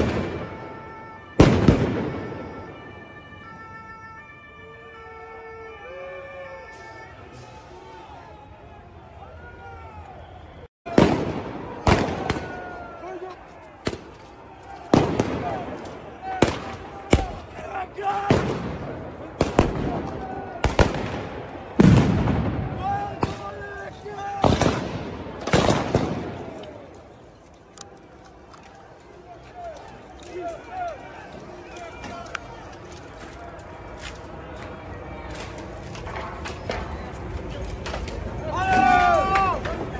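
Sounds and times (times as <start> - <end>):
loud explosive bangs echoing: 0.0 - 0.8, 1.4 - 2.7, 10.9 - 12.8, 14.9 - 15.8, 18.2 - 23.6, 24.4 - 26.6
crowd shouting: 7.3 - 27.0, 38.2 - 39.9.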